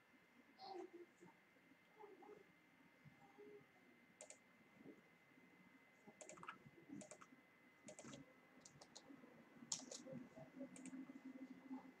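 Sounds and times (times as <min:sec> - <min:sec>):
computer mouse clicking: 0:04.2 - 0:04.4, 0:06.2 - 0:09.1, 0:09.7 - 0:10.1, 0:10.7 - 0:11.0.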